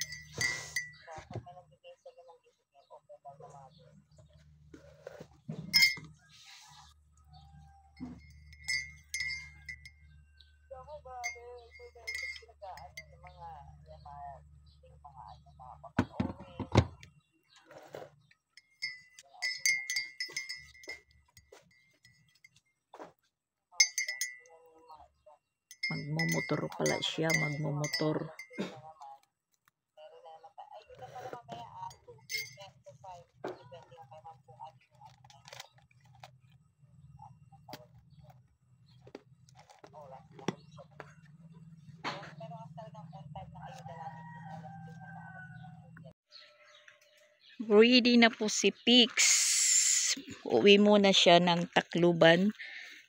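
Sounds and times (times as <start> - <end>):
light high clinks ringing: 0.0 - 1.1, 5.8 - 6.1, 8.0 - 10.5, 11.2 - 13.4, 18.6 - 22.6, 23.8 - 24.6, 25.7 - 28.8, 31.8 - 32.7
faint conversational talk: 0.0 - 4.4, 10.4 - 17.3, 23.7 - 36.0, 39.8 - 46.2.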